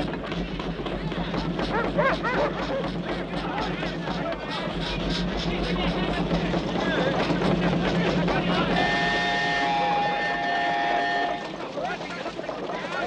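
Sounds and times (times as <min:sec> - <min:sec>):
steam engine running: 0:00.0 - 0:13.0
steam whistle chord: 0:08.7 - 0:11.5.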